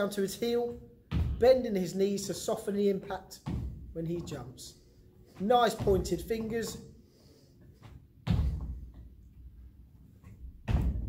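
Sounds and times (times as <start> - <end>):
feet landing on exercise mat: 0.7 - 1.7, 3.0 - 6.9, 7.7 - 9.4, 10.2 - 11.0.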